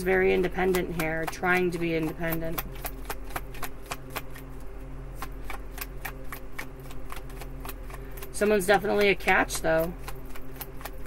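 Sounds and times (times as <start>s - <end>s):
cards being shuffled: 0.7s - 11.0s.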